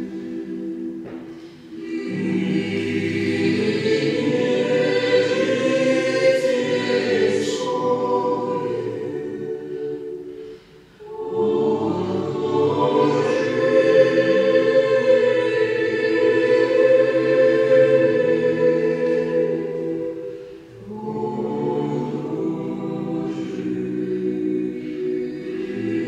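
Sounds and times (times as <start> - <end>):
choir singing sacred piece: 0.0 - 26.0.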